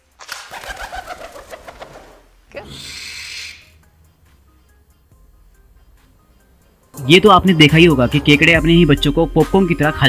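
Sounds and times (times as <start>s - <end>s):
pigeon wings flapping: 0.2s - 2.2s.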